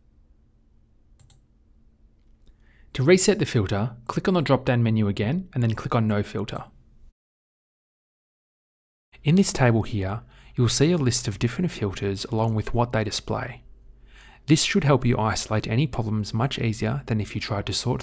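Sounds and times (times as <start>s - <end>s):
computer mouse clicking: 1.2s - 1.4s.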